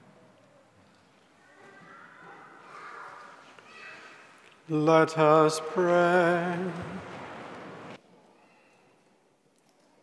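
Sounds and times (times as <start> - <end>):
congregation shuffling and rustling: 0.0 - 9.1.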